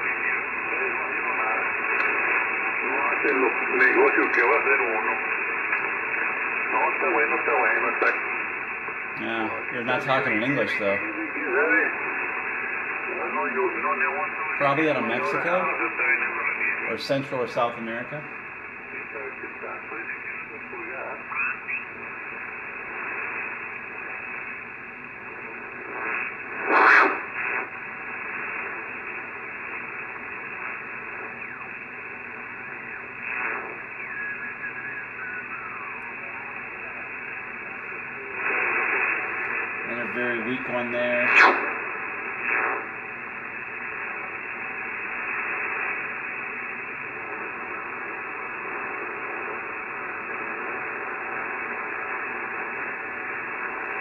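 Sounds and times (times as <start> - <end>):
faint voice over radio: 0.0 - 8.4, 9.2 - 12.3, 13.0 - 18.3, 18.9 - 23.2, 30.3 - 41.8
radio crackles: 0.0 - 54.0
radio static hiss: 0.0 - 54.0.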